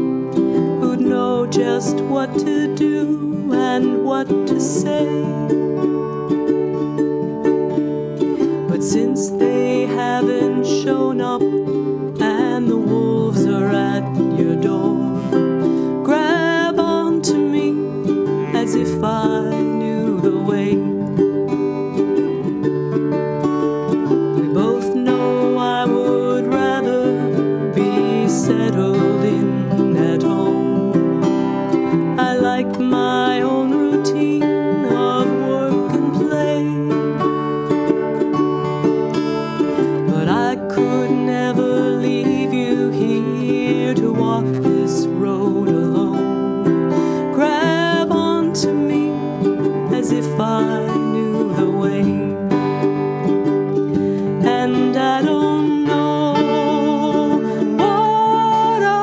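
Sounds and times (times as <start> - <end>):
woman singing: 0.0 - 38.6, 39.2 - 59.0
ukulele strumming chords: 0.0 - 59.0.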